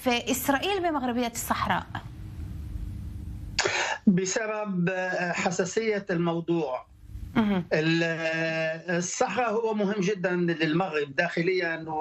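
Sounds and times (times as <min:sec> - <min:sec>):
low room rumble: 0:00.0 - 0:12.0
man coughing: 0:03.6 - 0:04.1.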